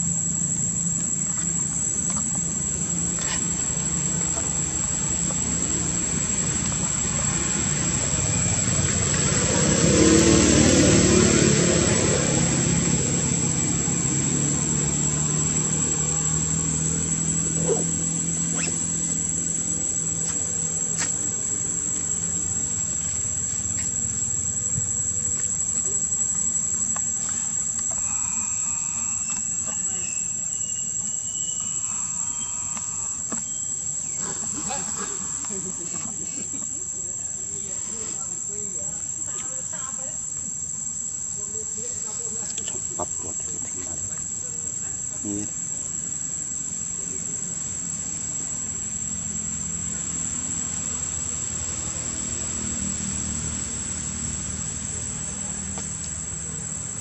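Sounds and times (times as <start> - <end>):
insects buzzing: 0.0 - 57.0.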